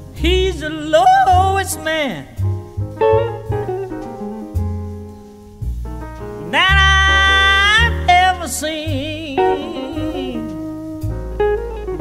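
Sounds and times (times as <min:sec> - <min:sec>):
bass accompaniment: 0:00.0 - 0:12.0
vocal jazz blues melody: 0:00.0 - 0:12.0.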